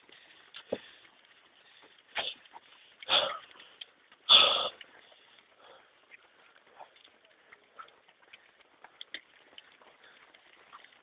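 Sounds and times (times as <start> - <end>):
heavy breathing: 0.0 - 10.8
faint rustling: 0.0 - 11.0.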